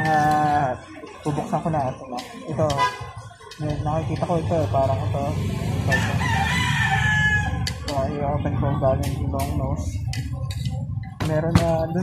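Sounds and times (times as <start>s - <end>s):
rooster crowing: 5.8s - 7.8s.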